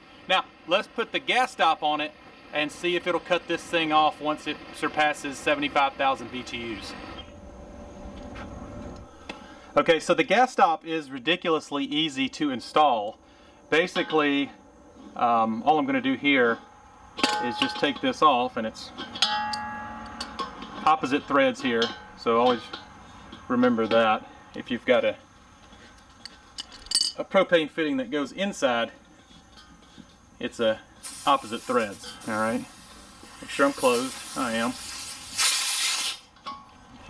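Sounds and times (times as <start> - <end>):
metal wrench clinking on valve: 17.2 - 18.2, 19.0 - 24.1, 26.2 - 27.3, 36.4 - 36.7
gas hissing from a fitting: 31.0 - 36.4.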